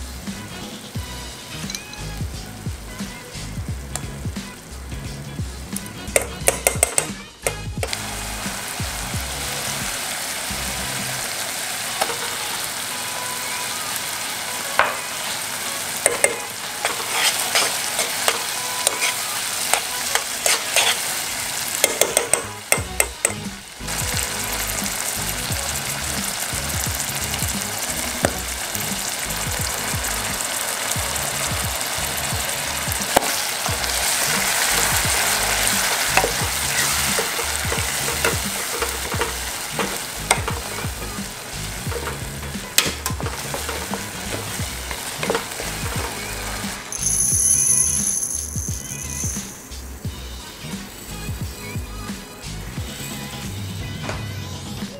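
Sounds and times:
squid sizzling in oil: 0.0 - 53.4
spoon scraping and clinking pan: 16.1 - 21.1, 42.8 - 46.2.

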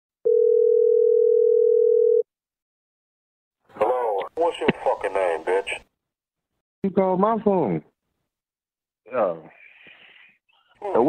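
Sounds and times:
telephone ringback tone: 0.3 - 2.2.

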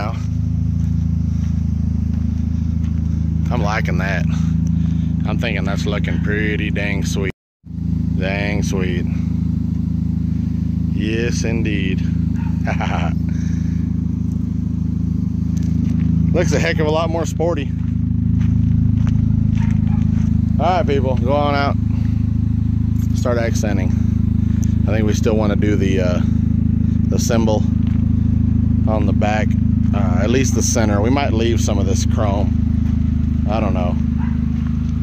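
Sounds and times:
vehicle engine idling: 0.0 - 35.0
footsteps on gravel: 0.1 - 5.2, 14.0 - 23.2, 26.2 - 30.0, 31.4 - 35.0.

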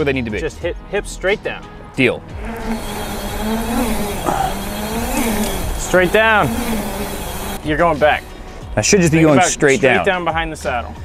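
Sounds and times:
bike freehub buzzing: 2.4 - 8.6.

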